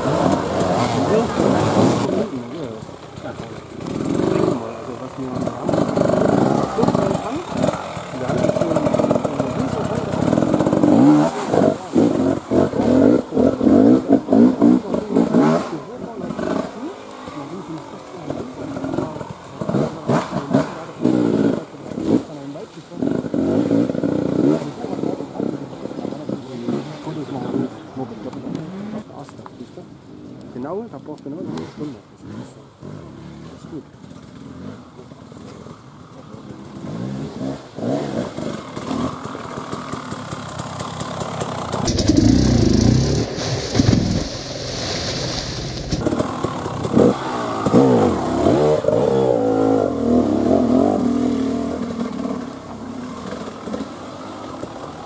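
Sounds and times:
dirt bike engine revving: 0.0 - 29.1, 31.4 - 55.0
second dirt bike engine: 0.0 - 55.0.

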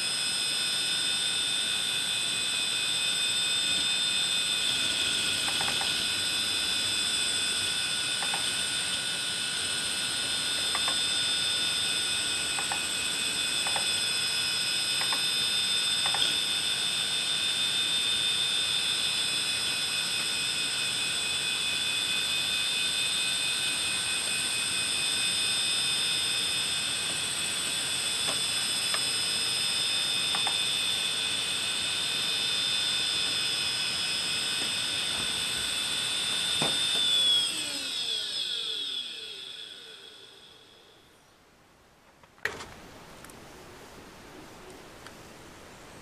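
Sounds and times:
hard disk high-pitched whine: 0.0 - 41.6.

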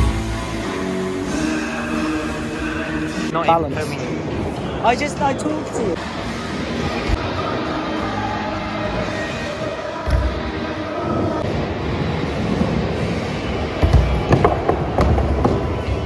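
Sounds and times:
background music: 0.0 - 16.0.

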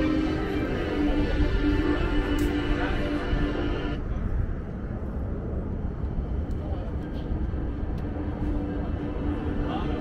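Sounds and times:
distant city noise: 0.0 - 10.0
wind rumbling on microphone: 0.0 - 10.0.

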